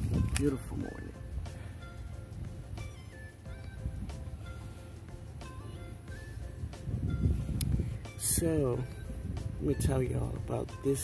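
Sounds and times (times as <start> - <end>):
wind rumble on microphone: 0.0 - 5.3, 6.1 - 11.0
soft background music: 0.0 - 11.0.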